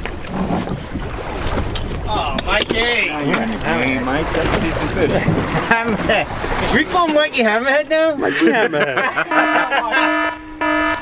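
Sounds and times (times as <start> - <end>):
wind buffeting microphone: 0.0 - 7.4
sea washing against hull: 0.0 - 11.0.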